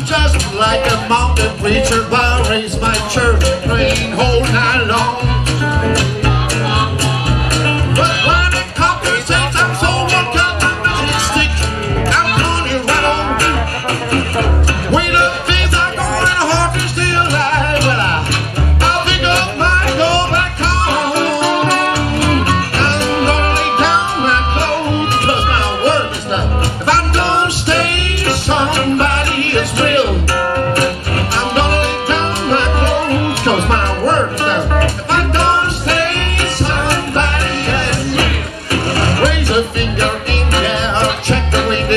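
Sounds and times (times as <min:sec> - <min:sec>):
guitar: 0:00.0 - 0:41.9
plucked upright bass: 0:00.0 - 0:41.9
amplified harmonica: 0:18.8 - 0:39.3.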